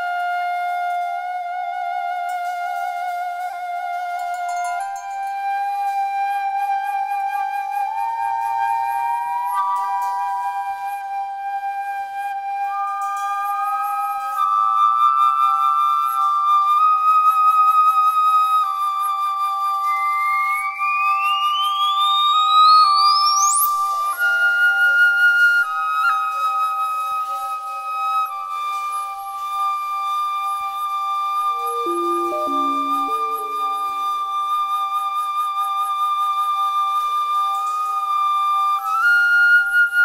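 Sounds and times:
flute long held notes: 0:00.0 - 0:40.0
steady electronic synthesizer tones: 0:31.6 - 0:34.0
high tone sweeping upward: 0:31.6 - 0:34.1.

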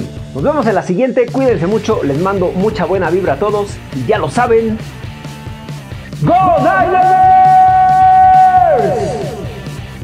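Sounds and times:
rock music with steady beat: 0:00.0 - 0:10.0
man shouting with echo: 0:06.2 - 0:09.6.

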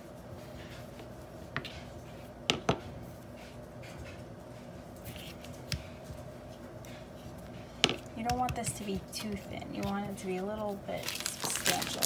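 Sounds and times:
hands kneading fondant: 0:00.0 - 0:12.0
steady low hum: 0:00.0 - 0:12.0.

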